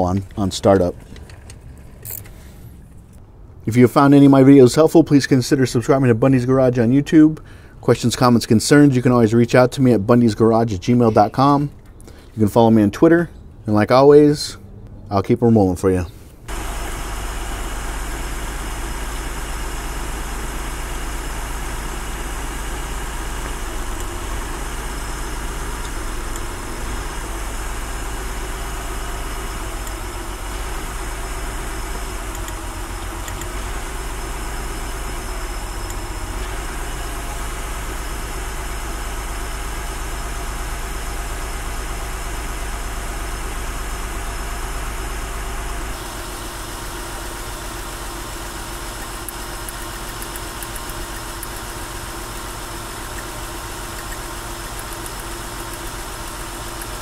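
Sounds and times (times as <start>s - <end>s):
car engine idling: 16.5s - 57.0s.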